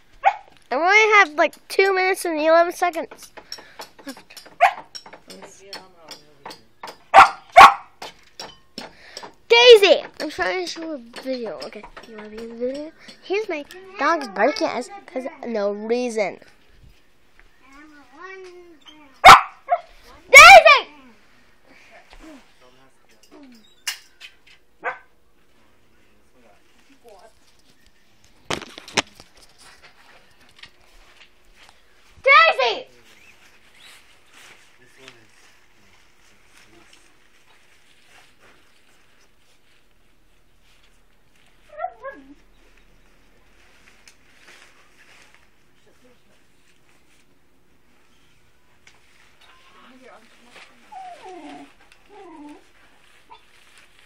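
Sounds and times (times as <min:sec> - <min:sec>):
dog barking: 0:00.2 - 0:00.5, 0:04.6 - 0:04.9, 0:07.1 - 0:08.0, 0:19.2 - 0:19.9, 0:24.8 - 0:25.2
dog whining: 0:41.6 - 0:42.6, 0:50.8 - 0:53.5.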